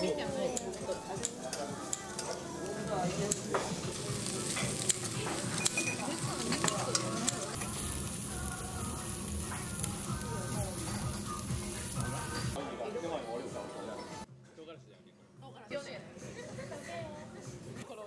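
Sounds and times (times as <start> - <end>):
meat sizzling on grill: 0.0 - 12.6
tongs and dishes clicking: 0.5 - 2.4, 4.2 - 7.8.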